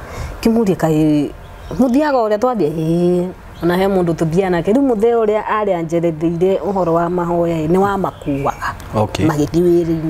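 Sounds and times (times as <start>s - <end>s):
woman talking: 0.4s - 10.0s.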